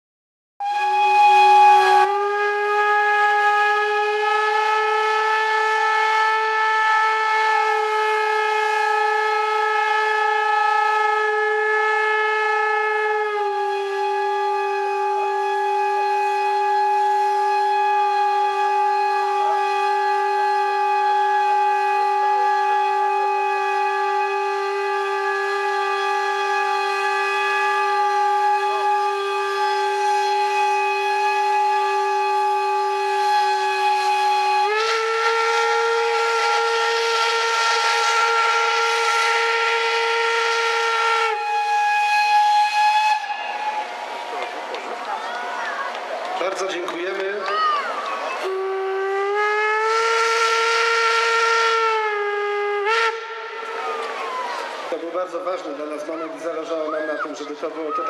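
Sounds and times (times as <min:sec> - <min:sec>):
steam locomotive whistle: 0:00.6 - 0:46.0, 0:47.8 - 0:58.0.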